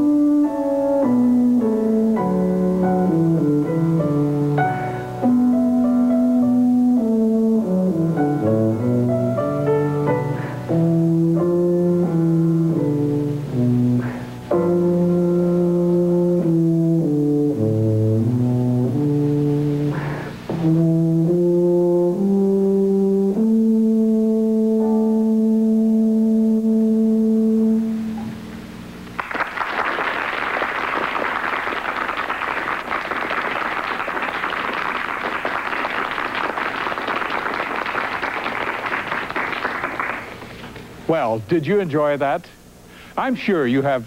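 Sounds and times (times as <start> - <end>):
tuba playing: 0.0 - 28.7
piano accompaniment: 0.0 - 28.8
audience applauding: 29.2 - 40.6.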